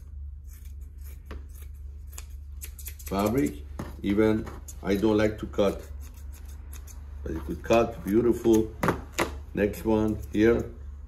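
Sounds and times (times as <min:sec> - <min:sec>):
steady low hum: 0:00.0 - 0:11.0
scissors snipping fabric: 0:00.5 - 0:10.7.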